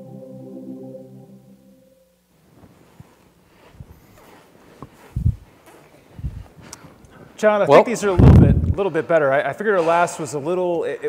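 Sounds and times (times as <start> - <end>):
faint rustling: 2.4 - 10.4.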